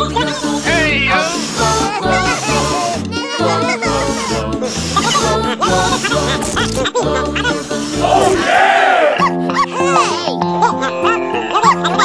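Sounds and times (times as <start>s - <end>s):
children shouting together: 8.0s - 9.2s.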